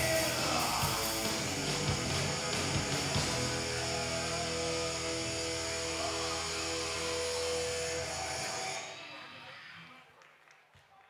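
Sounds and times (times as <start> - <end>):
electric guitars and bass ringing: 0.0 - 9.9.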